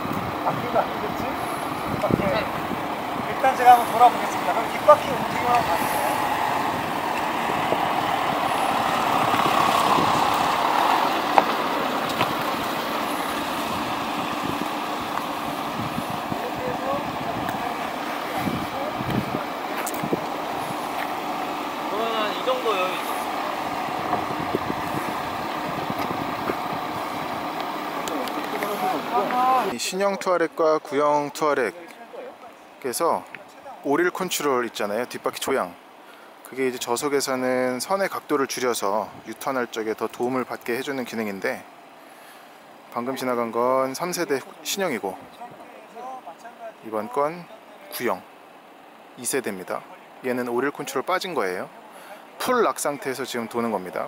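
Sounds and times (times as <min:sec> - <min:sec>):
diesel engine running at low speed: 0:00.0 - 0:29.8, 0:39.1 - 0:52.4
people talking in background: 0:14.0 - 0:27.0, 0:27.7 - 0:34.7, 0:44.3 - 0:49.2, 0:49.8 - 0:53.6.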